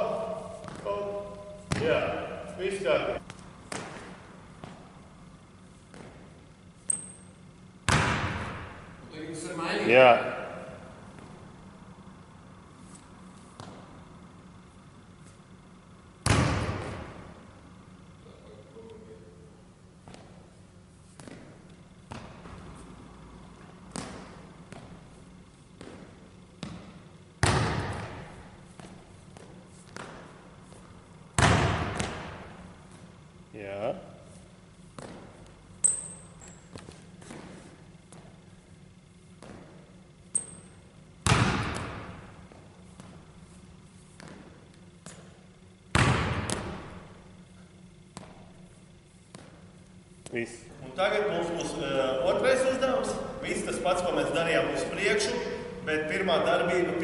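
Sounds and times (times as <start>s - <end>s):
sneaker squeaks: 0.0s - 2.7s, 5.8s - 8.0s, 34.3s - 38.4s, 39.4s - 40.9s
light footfalls: 0.0s - 5.1s, 5.7s - 6.5s, 48.1s - 50.5s
basketball bouncing on hardwood floor: 1.7s - 2.0s, 7.9s - 8.8s, 23.8s - 25.0s, 25.8s - 30.3s, 31.4s - 32.4s, 41.2s - 43.2s, 45.9s - 47.0s, 48.1s - 48.5s.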